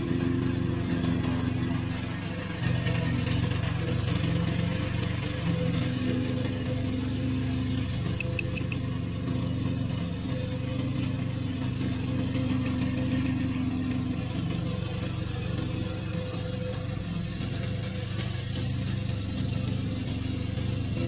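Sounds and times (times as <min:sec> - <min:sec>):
mower cutting dry grass: 0:00.0 - 0:21.0
mower engine running: 0:00.0 - 0:21.0.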